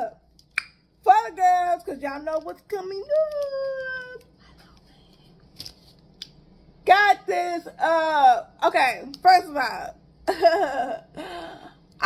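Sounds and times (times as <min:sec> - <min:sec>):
woman talking: 0:01.0 - 0:04.4, 0:06.8 - 0:11.0.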